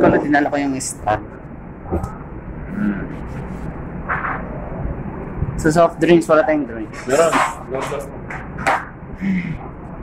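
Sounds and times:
restaurant background rumble: 0.0 - 10.0.

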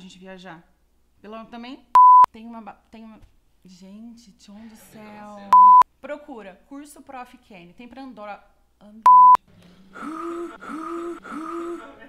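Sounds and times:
electronic censor beep: 2.0 - 2.3, 5.6 - 5.8, 9.1 - 9.4.

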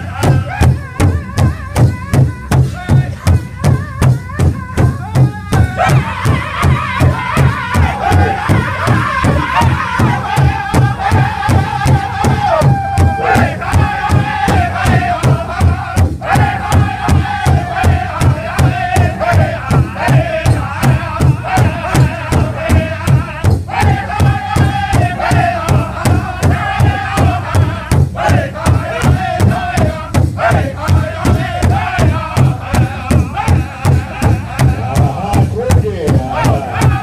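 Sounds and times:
group singing high-pitched: 0.0 - 2.2, 2.8 - 37.0
bass drum steady beat: 0.0 - 37.0.

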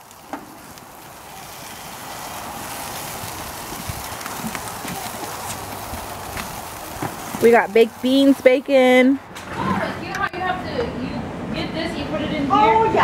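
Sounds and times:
meat sizzling on a grill: 0.0 - 9.2.

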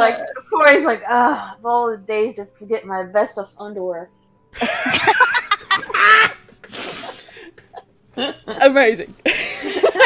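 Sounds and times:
loud laughter in bursts: 4.6 - 7.4.

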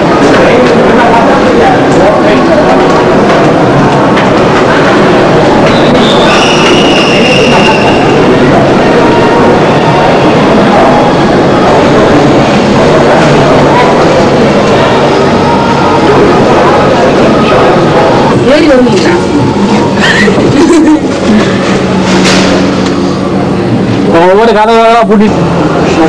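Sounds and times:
high-pitched whine: 0.0 - 26.0
monorail train running: 0.0 - 26.0.

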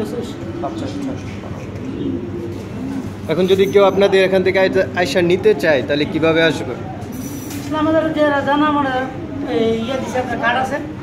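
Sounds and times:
pigeons cooing: 0.0 - 11.0
steady background hum: 0.0 - 11.0.

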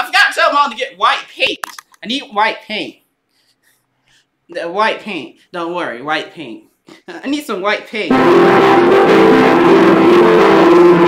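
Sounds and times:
man speaking: 0.0 - 3.0, 4.5 - 8.1.

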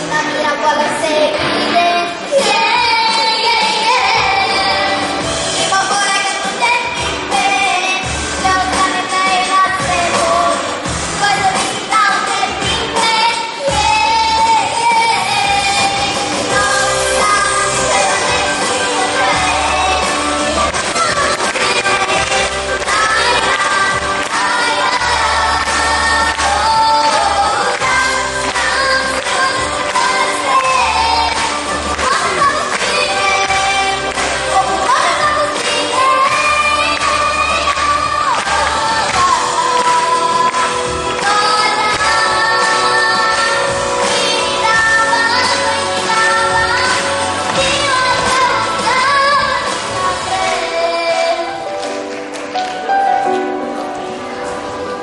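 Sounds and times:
girl singing into microphone: 0.0 - 52.1
pop backing track: 0.0 - 55.0.

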